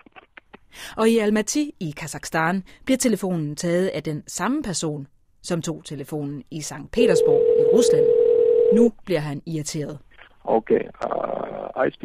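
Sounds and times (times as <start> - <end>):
person talking: 6.6 - 8.1, 8.7 - 9.2
steady telephone line tone: 7.0 - 8.9.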